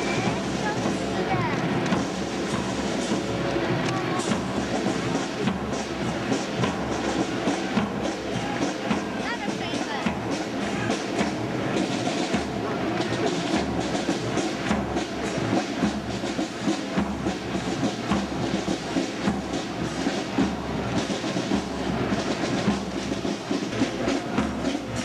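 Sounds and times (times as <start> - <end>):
marching drums cadence: 0.0 - 25.0.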